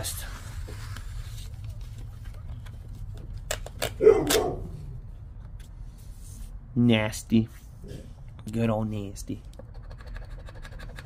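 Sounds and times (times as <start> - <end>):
dog barking: 4.0 - 4.9.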